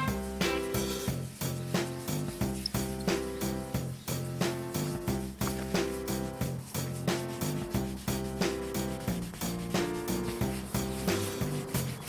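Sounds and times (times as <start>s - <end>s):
music with steady beat: 0.0s - 12.0s
polishing pad rubbing: 0.0s - 12.0s.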